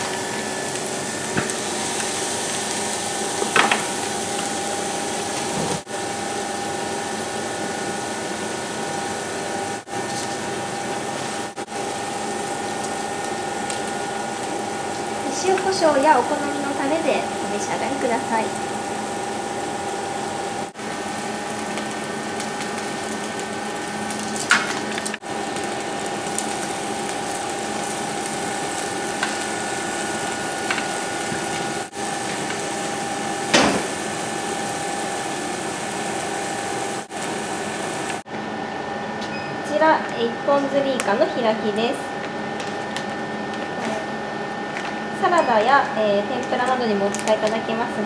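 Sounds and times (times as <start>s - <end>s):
induction hob electric whine: 0.0s - 48.0s
skewers sizzling in a pan: 7.8s - 38.2s.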